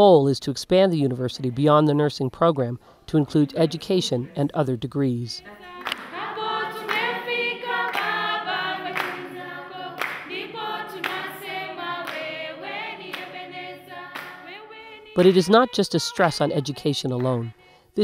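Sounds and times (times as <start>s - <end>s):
group singing in unison: 5.4s - 17.7s
hands clapping in time: 5.8s - 12.4s, 13.0s - 13.5s, 14.1s - 14.5s, 15.2s - 15.6s, 16.2s - 17.5s.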